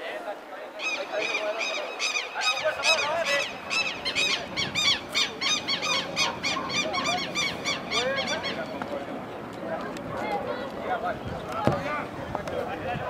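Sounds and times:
bird chirping: 0.8s - 9.0s.

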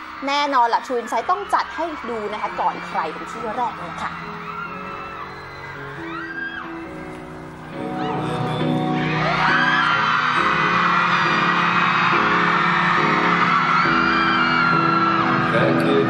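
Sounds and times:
crowd screaming and whooping: 0.0s - 16.0s
pop backing music: 1.6s - 16.0s.

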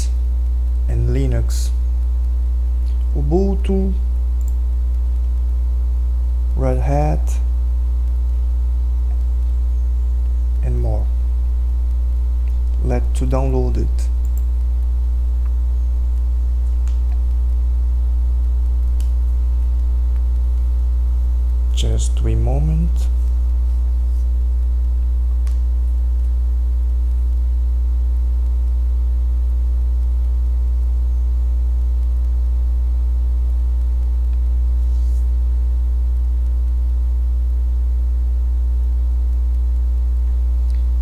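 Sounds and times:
electrical mains hum: 0.0s - 41.0s.

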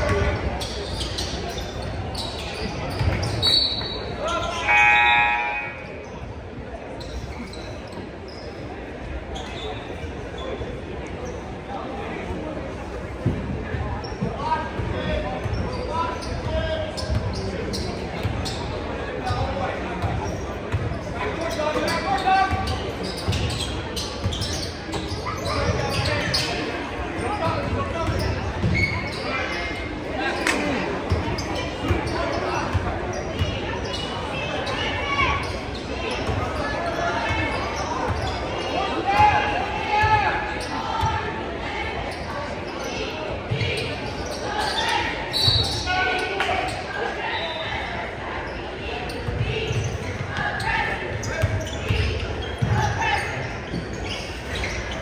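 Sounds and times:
spectators talking: 0.0s - 55.0s.

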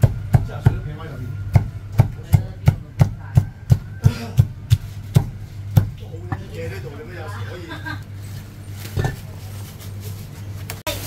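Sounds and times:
cleaver chopping meat on wood: 0.0s - 0.9s, 1.5s - 6.0s.

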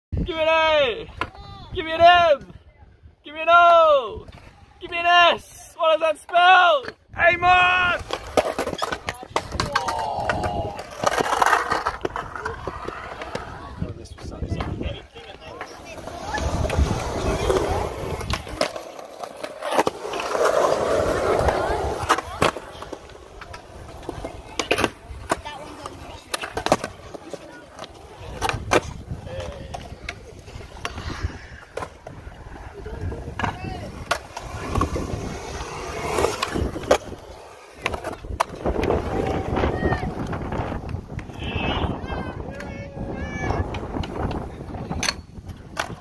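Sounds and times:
skateboard wheels rolling on concrete: 0.3s - 46.0s
skateboard clacking on concrete: 8.0s - 13.7s, 14.4s - 41.4s.

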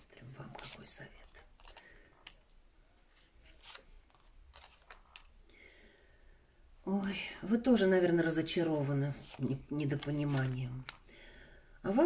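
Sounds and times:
cards clicking and rustling: 0.4s - 5.4s, 9.1s - 11.1s.

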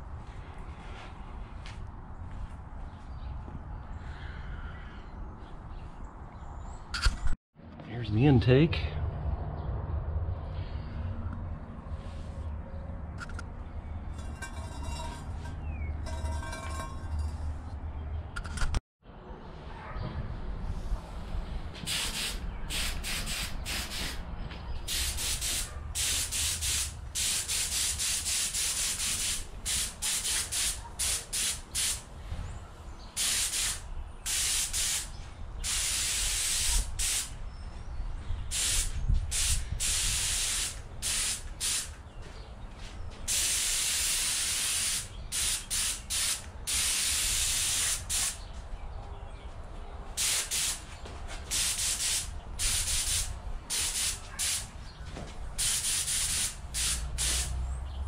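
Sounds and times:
spray gun hissing bursts: 21.9s - 24.2s, 24.9s - 32.0s, 33.2s - 37.3s, 38.5s - 41.9s, 43.3s - 48.4s, 50.2s - 50.8s, 51.5s - 54.7s, 55.6s - 57.6s.

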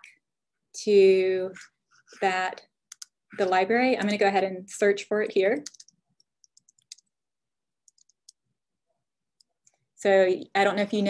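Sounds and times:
faint keyboard typing: 2.8s - 4.1s, 5.6s - 7.2s, 7.8s - 8.5s.

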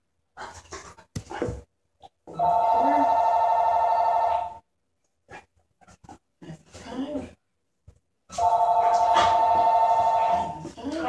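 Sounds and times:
telephone ringing: 2.4s - 4.6s, 8.4s - 10.6s.

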